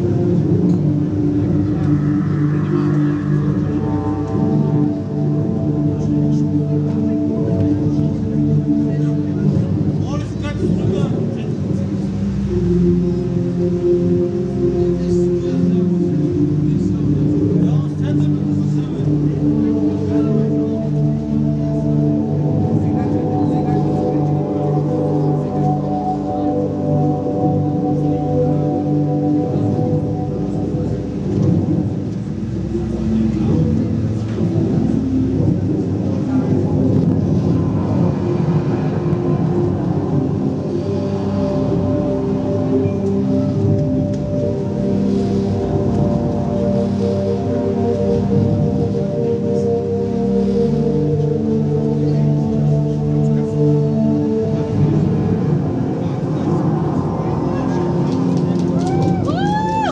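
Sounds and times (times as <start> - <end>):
deep continuous rumble: 0.0 - 59.9
held drone tones: 0.0 - 59.9
swooping pitch glides: 0.0 - 59.9
voices: 0.0 - 59.9.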